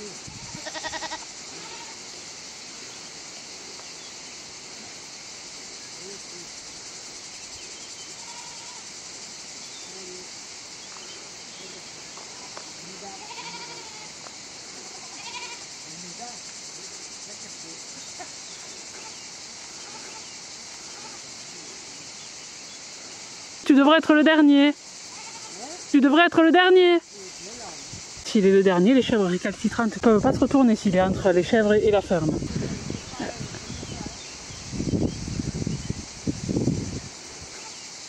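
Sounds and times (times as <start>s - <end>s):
steady high hiss: 0.0s - 38.0s
goats bleating: 0.4s - 2.0s, 8.1s - 8.8s, 12.3s - 15.7s, 18.9s - 21.2s, 25.1s - 25.6s.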